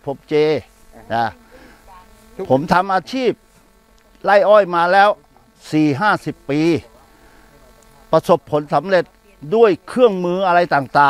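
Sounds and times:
man speaking: 0:00.0 - 0:01.4, 0:02.4 - 0:03.4, 0:04.1 - 0:11.0
faint steady hum: 0:00.0 - 0:11.0.

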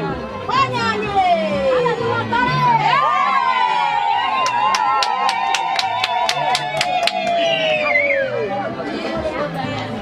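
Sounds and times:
loud crowd chatter: 0:00.0 - 0:10.0.

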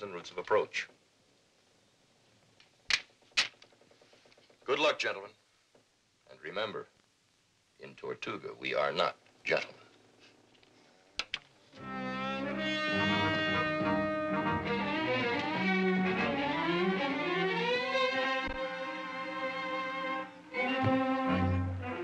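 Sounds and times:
orchestral music strings and brass: 0:11.8 - 0:22.0.

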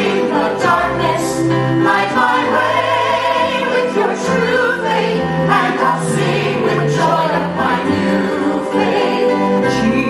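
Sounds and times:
woman singing: 0:08.5 - 0:10.0.

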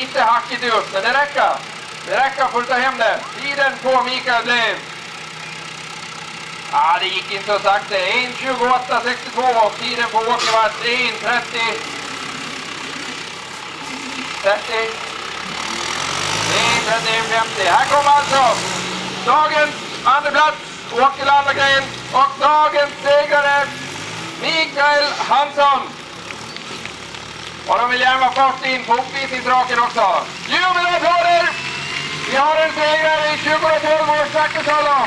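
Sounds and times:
man talking: 0:00.0 - 0:04.8, 0:06.7 - 0:11.9, 0:14.4 - 0:15.6, 0:16.4 - 0:23.8, 0:24.4 - 0:26.0, 0:27.7 - 0:31.6, 0:32.2 - 0:35.0
tractor diesel engine running: 0:00.0 - 0:35.0.

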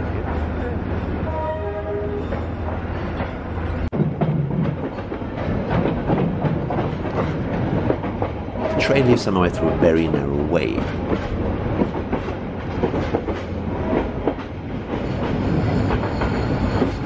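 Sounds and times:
train rumble: 0:00.0 - 0:17.0.

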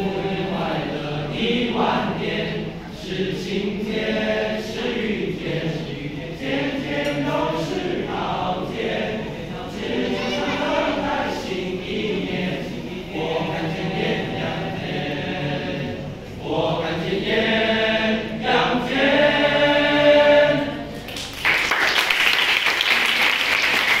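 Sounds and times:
boys' choir singing: 0:00.0 - 0:22.2
audience applauding: 0:20.9 - 0:24.0.

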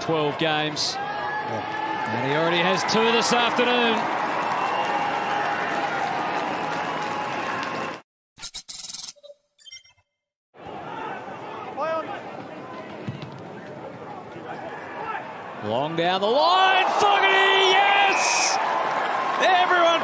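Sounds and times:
stadium crowd cheering: 0:00.0 - 0:08.0, 0:10.6 - 0:20.0
brief tone: 0:08.4 - 0:10.3
quiet crowd ambience: 0:10.6 - 0:15.8.

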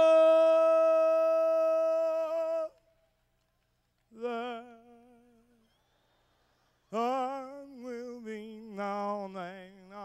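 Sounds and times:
man singing long high note: 0:00.0 - 0:02.7.

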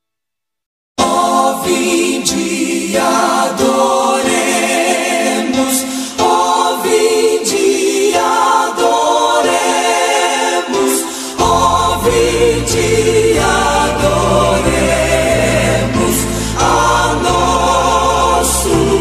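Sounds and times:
choir singing gospel chords: 0:01.0 - 0:19.0.

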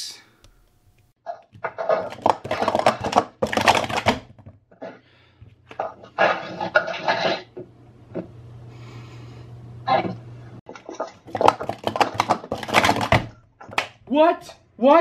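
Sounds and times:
plastic cups clattering: 0:01.5 - 0:07.4, 0:10.7 - 0:14.0
steady low hum: 0:05.1 - 0:10.7.

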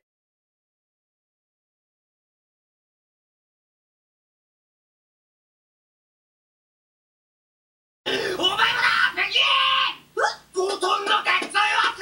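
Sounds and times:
person shouting: 0:08.4 - 0:12.0.

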